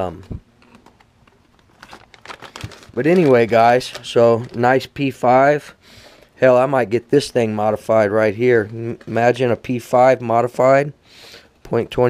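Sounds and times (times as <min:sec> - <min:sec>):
plastic bag crinkling: 0:00.6 - 0:05.0.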